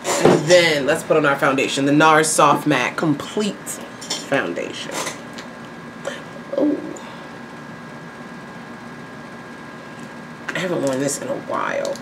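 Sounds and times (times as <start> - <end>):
high whine: 5.8 - 10.6.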